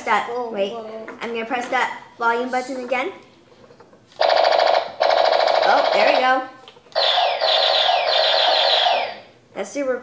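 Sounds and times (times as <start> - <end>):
toy laser zaps: 4.2 - 6.4, 7.0 - 9.3.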